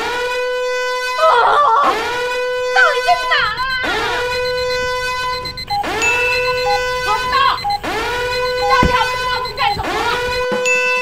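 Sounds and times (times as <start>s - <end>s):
alarm buzzing: 0.0s - 11.0s
person crying out: 1.2s - 2.0s.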